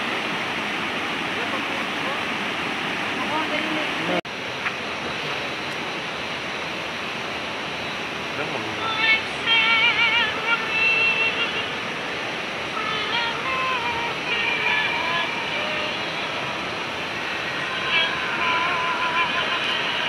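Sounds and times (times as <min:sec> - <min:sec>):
steady rushing hiss: 0:00.0 - 0:20.0
high voice singing with vibrato: 0:08.8 - 0:12.0, 0:12.6 - 0:20.0.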